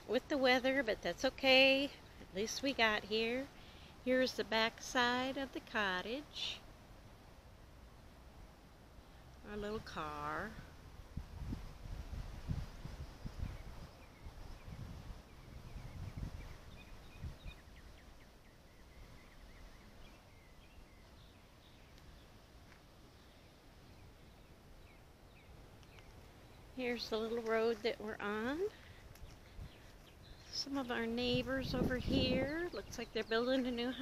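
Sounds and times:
wind gusting on microphone: 9.6 - 18.2, 26.8 - 34.0
faint bird chirps: 13.0 - 22.4.

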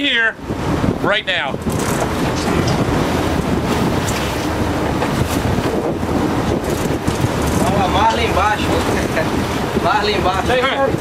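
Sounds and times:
boat rumble: 0.0 - 11.0
sea running: 0.0 - 11.0
wind rushing over microphone: 0.0 - 11.0.

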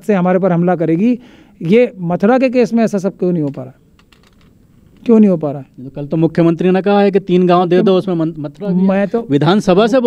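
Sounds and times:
man speaking: 5.0 - 10.0.

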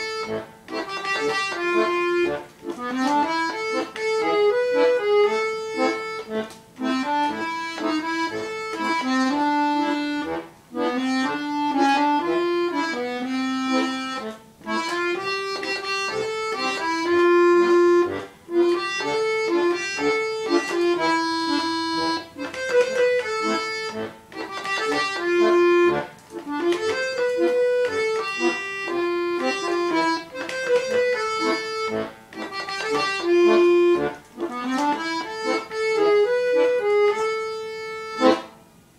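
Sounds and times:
button accordion melody: 0.0 - 38.7.

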